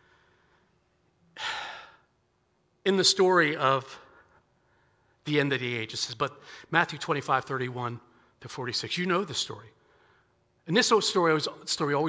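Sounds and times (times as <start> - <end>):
man sighing: 1.4 - 2.1.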